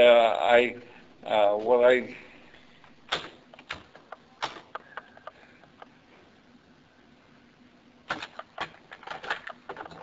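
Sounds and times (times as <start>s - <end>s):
tape recorder clicks and knocks: 3.1s - 5.9s, 8.1s - 10.0s.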